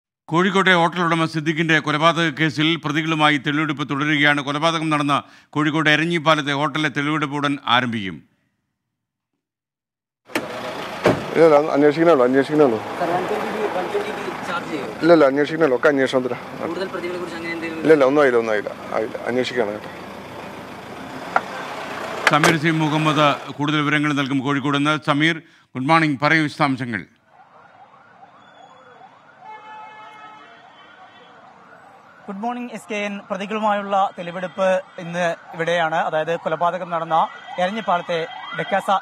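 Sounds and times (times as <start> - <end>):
man talking: 0.3 - 8.2, 11.3 - 19.9, 22.3 - 27.2, 32.3 - 39.0
street noise: 0.3 - 8.4, 10.3 - 39.0
outdoor noise: 10.2 - 39.0
faint siren wailing: 11.4 - 24.4, 27.2 - 39.0.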